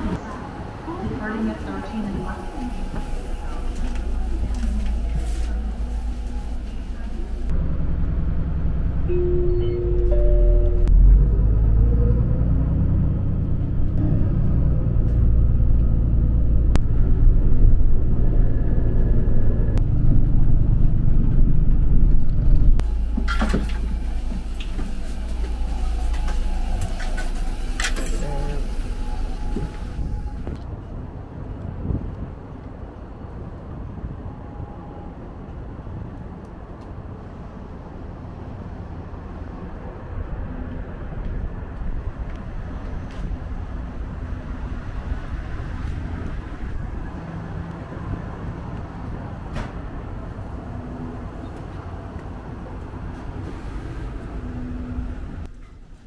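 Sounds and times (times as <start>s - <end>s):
bus engine rumble: 0.0s - 56.0s
road noise: 0.0s - 56.0s.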